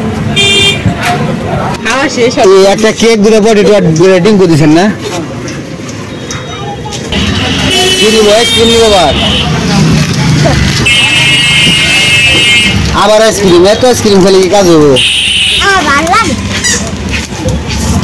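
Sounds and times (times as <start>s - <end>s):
street traffic noise: 0.0s - 18.0s
vehicle horn blasts: 0.4s - 0.8s, 7.2s - 9.6s, 10.8s - 12.8s, 15.0s - 15.7s
voices: 0.4s - 18.0s.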